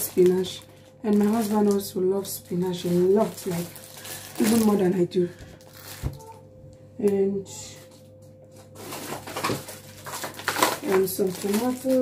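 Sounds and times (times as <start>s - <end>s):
plastic bags rustling and crinkling: 0.0s - 6.5s, 7.8s - 12.0s.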